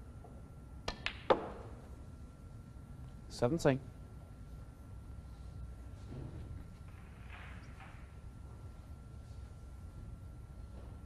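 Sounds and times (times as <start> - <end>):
snooker balls clicking: 0.2 - 1.8, 6.7 - 8.2
cue tip clicking on ball: 0.9 - 1.7
ball dropping into pocket: 0.9 - 1.8.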